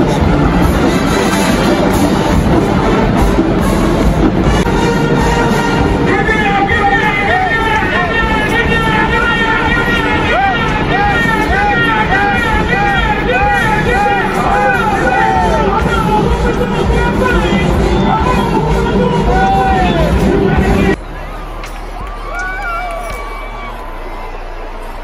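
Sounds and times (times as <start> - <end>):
marching band playing: 0.0 - 21.2
loud crowd noise: 0.0 - 25.0.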